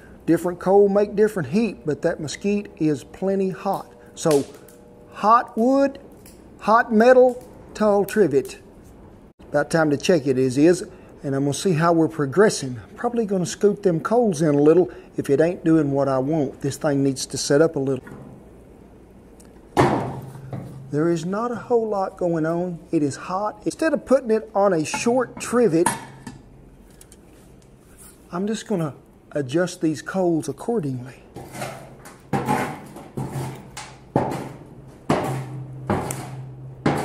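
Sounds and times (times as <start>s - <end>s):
coals scraped across metal: 31.3s - 33.8s, 35.2s - 37.0s
poker scrapes and knocks: 31.4s - 34.4s, 35.1s - 36.4s.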